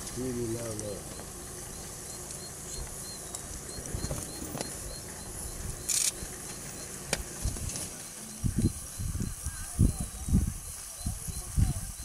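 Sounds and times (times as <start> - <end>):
steady outdoor hiss: 0.0 - 12.0
faint high chirps: 0.8 - 12.0.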